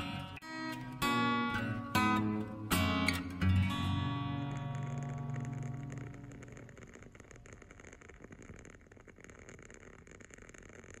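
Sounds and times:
acoustic guitar chord: 0.0s - 6.3s
candle wick crackling: 0.0s - 11.0s.

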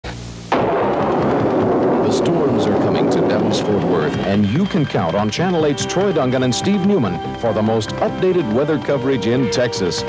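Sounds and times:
low hum: 0.2s - 8.0s
thunder rumble: 0.5s - 7.6s.

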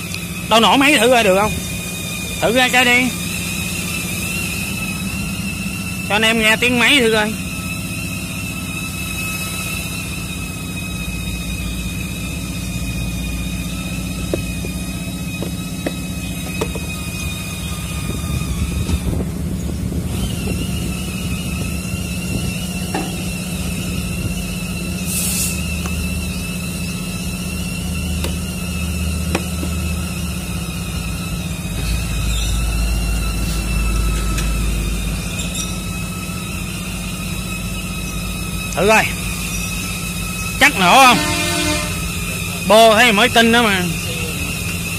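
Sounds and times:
grinder whining: 0.0s - 44.9s.

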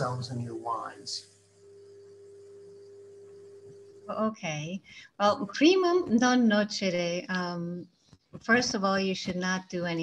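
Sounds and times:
low hum: 0.0s - 4.6s
faint steady tone: 0.0s - 8.0s.

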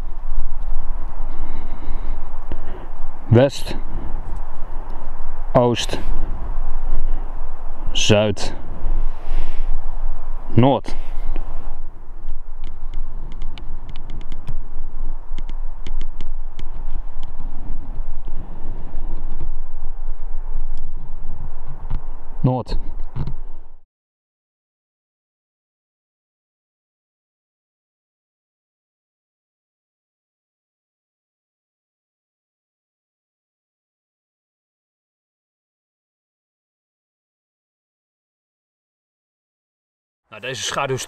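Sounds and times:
wind buffeting microphone: 0.0s - 23.8s
light crackles and clicks: 12.2s - 14.6s, 15.3s - 18.4s.

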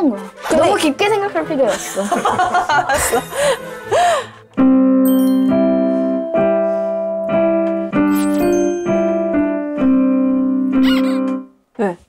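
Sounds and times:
digital piano chords: 2.8s - 11.5s.

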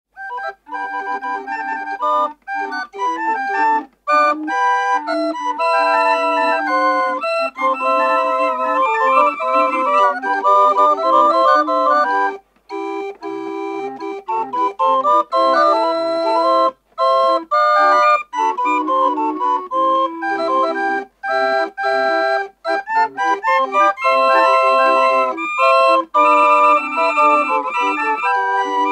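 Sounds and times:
calliope playing quick melody: 0.2s - 28.9s.

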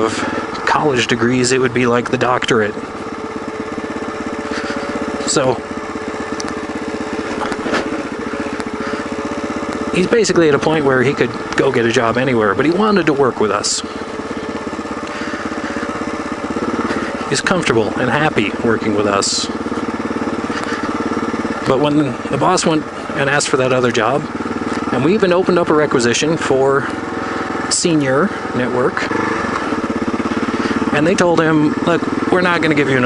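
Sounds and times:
motorcycle engine chugging: 0.0s - 33.0s.

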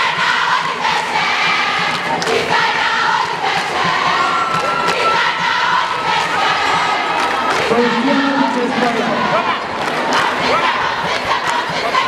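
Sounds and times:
crowd singing and shouting: 0.0s - 12.0s.

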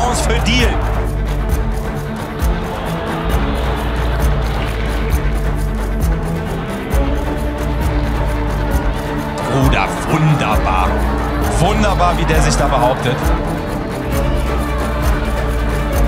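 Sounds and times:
background music with deep bass: 0.0s - 16.0s.

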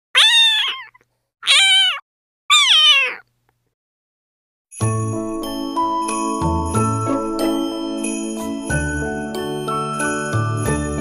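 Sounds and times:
cat meowing: 0.2s - 3.3s.

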